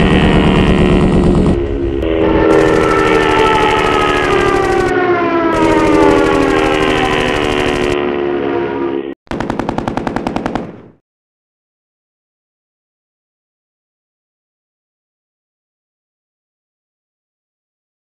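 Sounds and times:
propeller plane engine drone: 0.0 - 10.7
machine-gun fire: 2.6 - 4.9, 5.5 - 8.0, 9.3 - 11.0.

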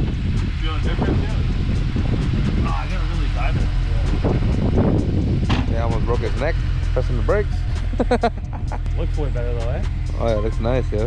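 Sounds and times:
car engine idling: 0.0 - 11.0
people talking: 0.6 - 1.5, 2.6 - 4.6, 5.5 - 11.0.

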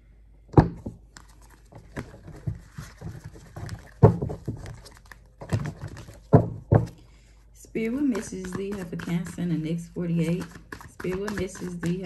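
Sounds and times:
cards shuffled by hand: 1.1 - 6.4, 8.1 - 9.6, 10.2 - 12.0.

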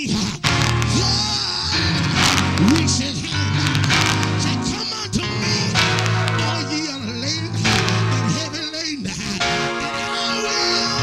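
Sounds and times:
preacher's amplified voice: 0.0 - 11.0
keyboard sustained chords: 0.4 - 11.0.

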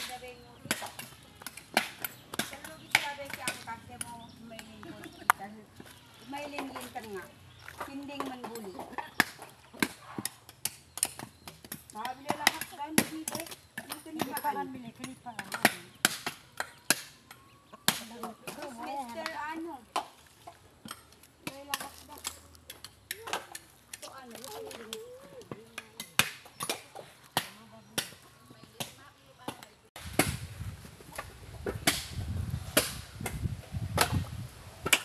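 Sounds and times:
voices talking: 0.0 - 9.7, 11.9 - 20.2, 20.8 - 30.0.

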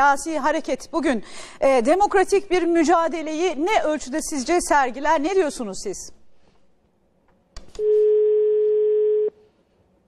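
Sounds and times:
steady telephone tone: 7.8 - 9.5.

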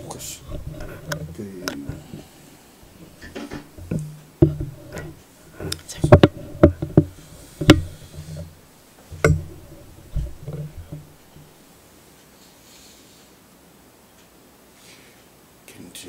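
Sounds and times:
microphone stand handling knocks: 0.4 - 11.6.

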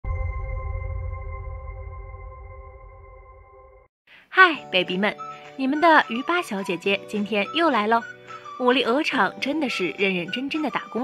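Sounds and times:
sustained electronic tone: 0.0 - 3.9.

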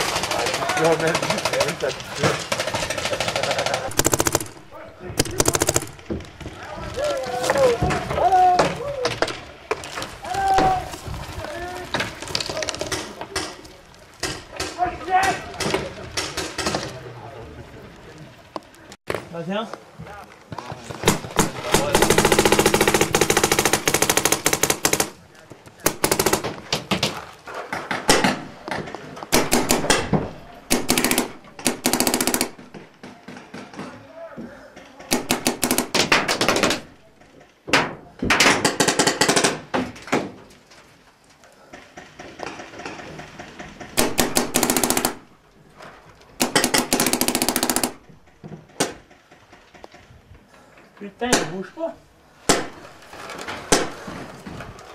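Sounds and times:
paintball markers rapid firing: 0.0 - 4.6, 5.2 - 6.0, 21.0 - 25.2, 25.9 - 27.0, 29.3 - 33.4, 35.1 - 36.9, 44.0 - 45.3, 46.4 - 48.1.

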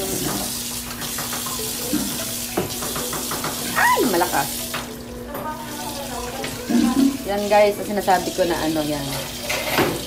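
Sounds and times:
tap water pouring into a metal bowl: 0.0 - 10.0.

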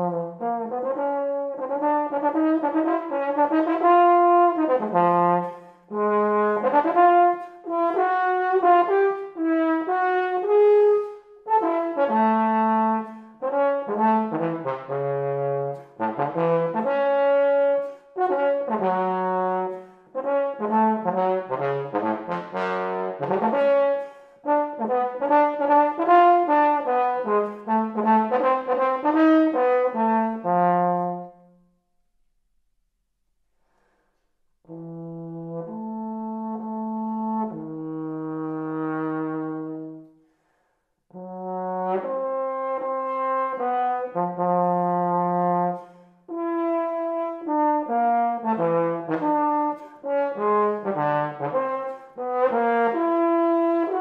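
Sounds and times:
bass trombone melody: 0.0 - 31.6, 34.6 - 40.1, 41.1 - 54.0
breathing: 5.4 - 5.9, 7.3 - 7.7, 11.0 - 11.4, 13.0 - 13.4, 17.8 - 18.2, 19.7 - 20.2, 23.9 - 24.5, 33.5 - 34.5, 40.1 - 41.1, 45.7 - 46.3, 49.8 - 50.1, 51.9 - 52.2.

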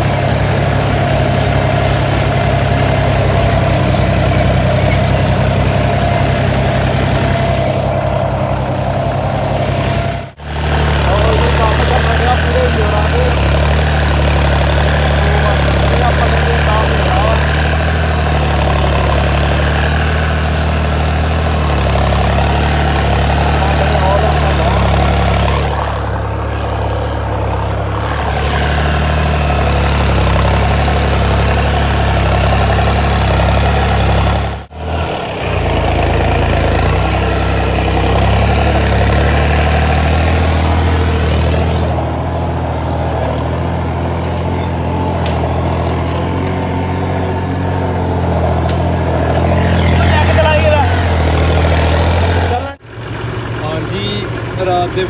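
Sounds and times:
tractor diesel engine droning: 0.0 - 55.0.

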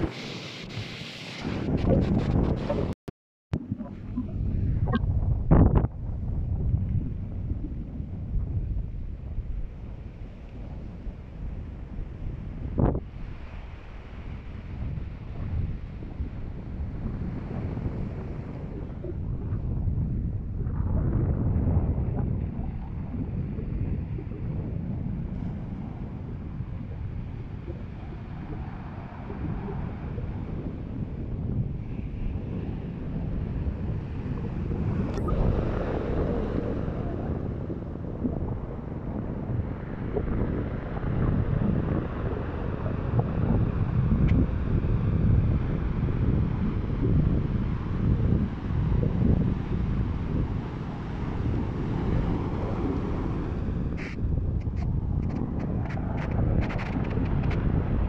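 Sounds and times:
wind buffeting microphone: 0.0 - 3.0, 3.6 - 58.0.

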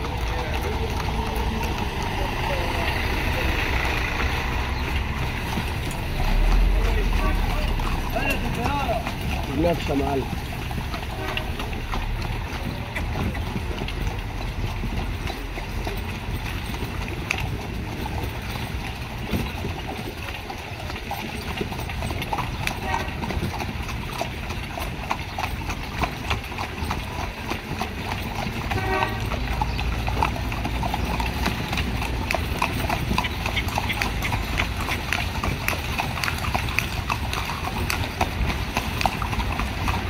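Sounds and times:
carriage low rumble: 0.0 - 40.0
horse hooves clip-clopping on pavement: 0.0 - 40.0.

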